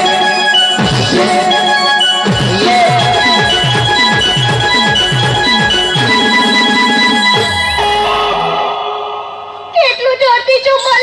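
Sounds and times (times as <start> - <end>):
held keyboard notes: 0.0 - 8.8
drum beat: 0.8 - 8.7.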